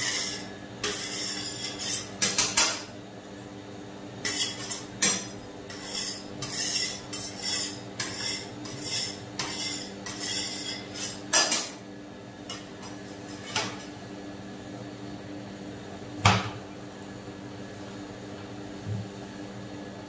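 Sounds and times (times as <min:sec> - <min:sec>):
metal spatula scraping cold plate: 0:00.0 - 0:02.9, 0:04.2 - 0:11.8.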